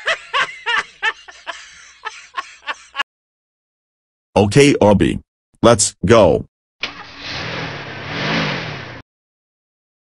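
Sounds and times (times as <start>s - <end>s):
van engine pulling away: 6.8s - 9.0s.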